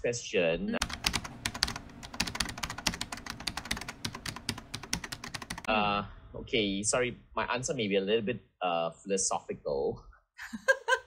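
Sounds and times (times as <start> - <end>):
keyboard typing: 0.8 - 5.7.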